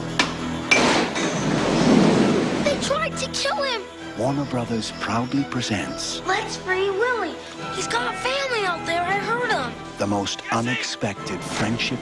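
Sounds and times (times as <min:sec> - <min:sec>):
metal impact: 0:00.1 - 0:02.8
sharp metal clank: 0:00.2 - 0:01.7.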